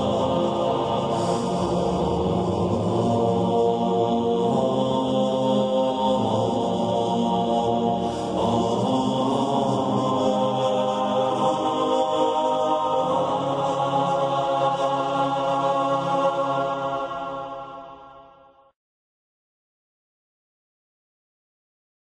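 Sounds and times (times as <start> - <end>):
slow chanted vocal music: 0.0 - 18.8.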